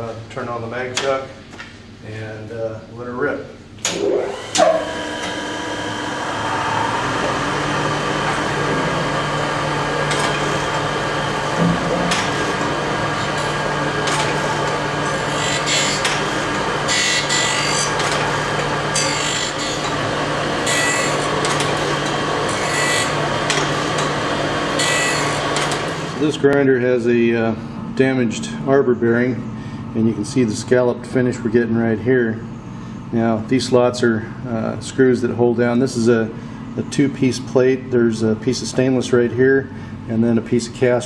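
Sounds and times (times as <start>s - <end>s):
grinder motor hum: 3.9s - 26.6s
grinding wheel hissing on metal: 12.2s - 26.2s.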